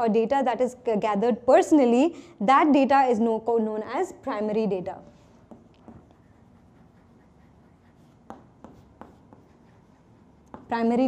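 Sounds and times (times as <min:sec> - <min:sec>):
chalk strokes on blackboard: 0:05.0 - 0:11.0.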